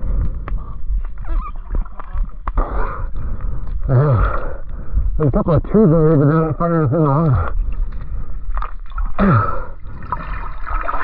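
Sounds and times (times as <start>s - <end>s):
water moving against housing: 7.0s - 11.0s.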